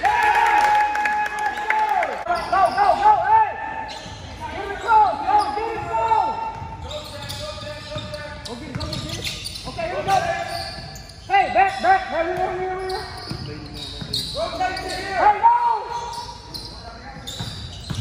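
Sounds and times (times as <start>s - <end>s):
sneakers squeaking: 2.2s - 18.0s
basketball bouncing: 17.4s - 18.0s.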